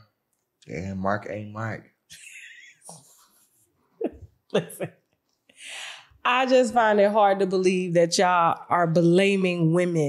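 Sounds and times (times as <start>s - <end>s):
woman's breathy laugh: 4.0s - 4.9s.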